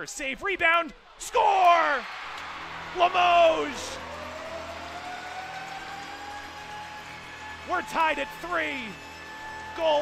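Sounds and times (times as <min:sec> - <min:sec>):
arena crowd cheering: 0:00.0 - 0:10.0
long rising tone: 0:02.4 - 0:09.8.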